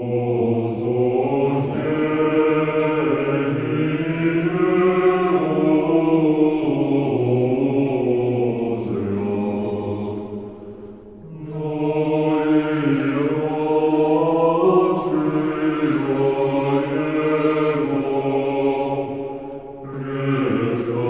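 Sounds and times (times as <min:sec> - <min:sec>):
male choir singing unaccompanied: 0:00.0 - 0:21.0.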